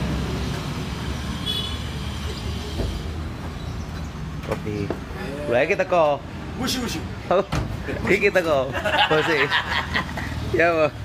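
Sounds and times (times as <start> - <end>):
man talking and laughing: 7.2 - 10.9.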